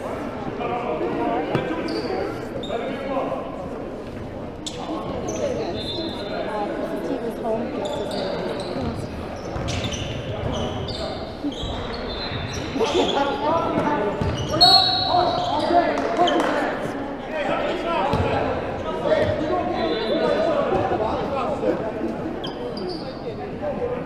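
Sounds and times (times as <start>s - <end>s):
people talking and calling: 0.0s - 24.0s
basketball bouncing in echoing hall: 8.8s - 15.6s, 18.0s - 18.5s.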